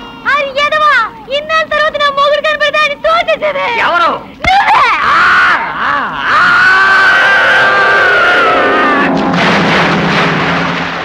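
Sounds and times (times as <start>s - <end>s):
person screaming: 4.5s - 9.2s.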